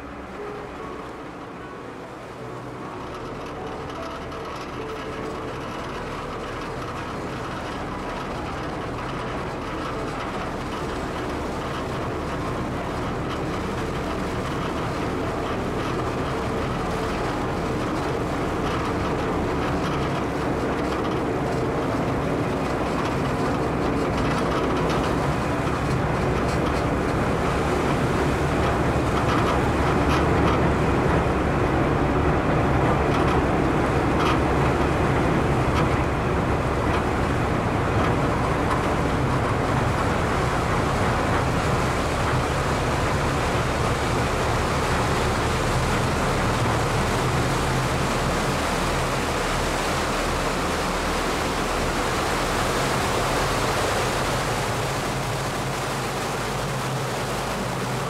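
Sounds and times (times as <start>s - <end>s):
ferry engine humming: 0.0s - 58.0s
propeller wash churning water: 0.0s - 58.0s.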